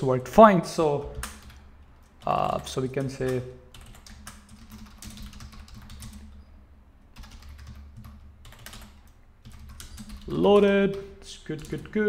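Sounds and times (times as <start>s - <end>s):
computer keyboard typing: 1.0s - 6.5s, 7.1s - 12.0s.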